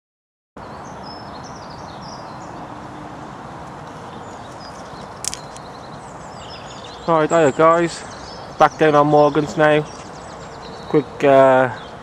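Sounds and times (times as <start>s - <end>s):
small birds chirping: 0.6s - 12.0s.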